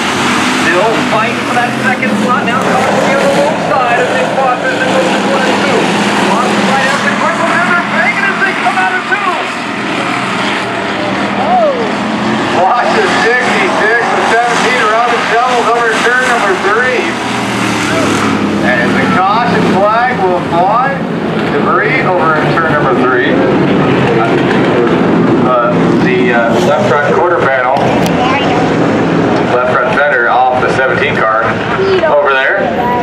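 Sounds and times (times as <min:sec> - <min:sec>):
race car engines running: 0:00.0 - 0:33.0
voice over loudspeakers: 0:00.6 - 0:09.6, 0:12.5 - 0:17.2, 0:25.4 - 0:28.8, 0:29.5 - 0:33.0.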